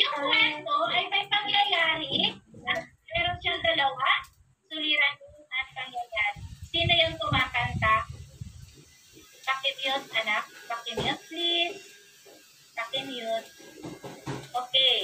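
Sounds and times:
person talking: 0.0 - 8.1.

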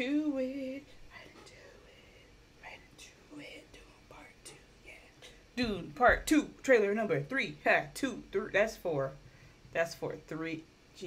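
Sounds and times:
faint whispering: 1.1 - 5.4.

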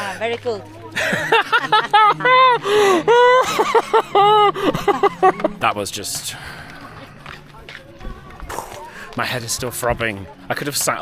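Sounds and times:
man laughing emotionally: 1.0 - 5.6.

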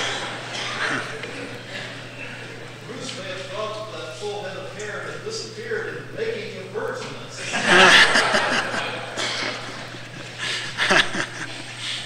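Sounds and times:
audience laughing: 0.0 - 3.0, 7.4 - 12.0.

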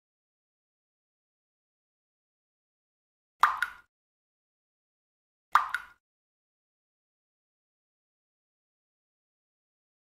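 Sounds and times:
water drop plopping into water: 3.4 - 3.9, 5.5 - 6.0.

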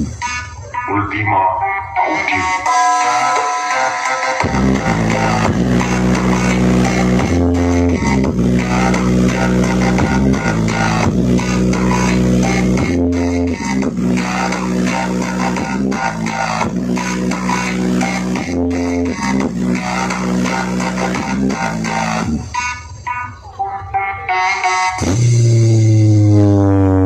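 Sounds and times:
dance music with strong bass: 0.0 - 23.3, 24.4 - 27.0.

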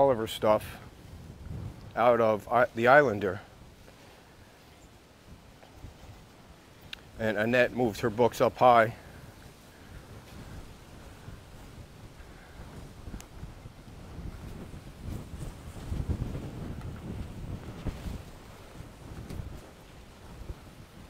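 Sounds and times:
wind on microphone: 0.0 - 21.0.

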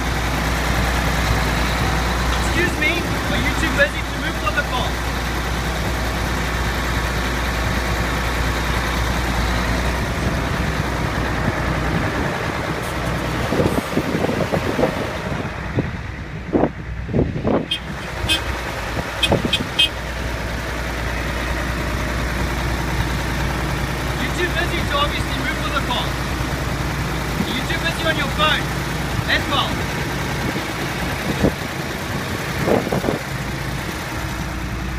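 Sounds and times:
diesel engine idling: 0.0 - 34.9.

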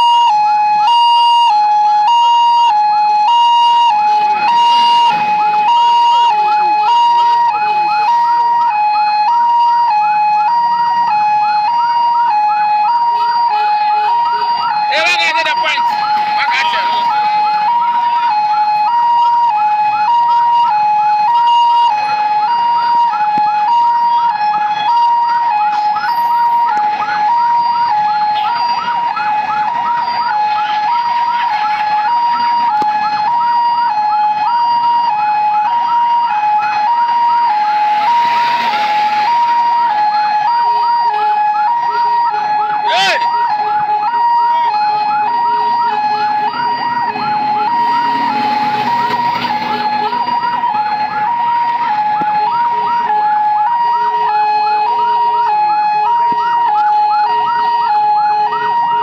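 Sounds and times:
fast siren chirp: 0.0 - 59.0
sharp siren whoop: 0.0 - 59.0
two-tone siren wail: 0.0 - 59.0.

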